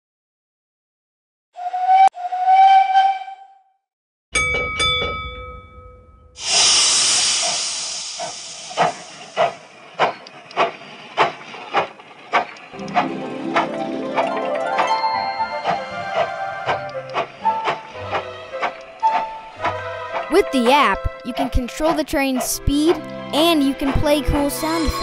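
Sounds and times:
steam whistle toot: 0:01.6 - 0:03.7, 0:06.4 - 0:09.4
bell strikes: 0:04.4 - 0:06.4
steam hiss: 0:06.4 - 0:11.8
steam train chuffing: 0:06.4 - 0:25.0
tune playing: 0:12.8 - 0:17.8.

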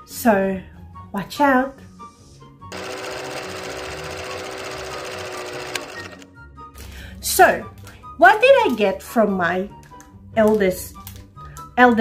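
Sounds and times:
film projector clattering: 0:02.7 - 0:06.3.

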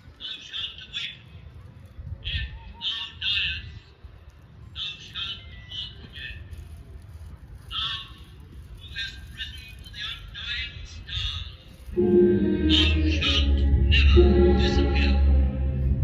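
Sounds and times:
low steady rumble: 0:11.8 - 0:16.0.

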